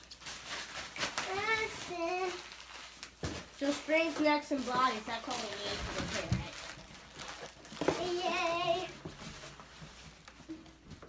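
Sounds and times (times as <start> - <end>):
plastic wrapping rustling: 0.0 - 11.0.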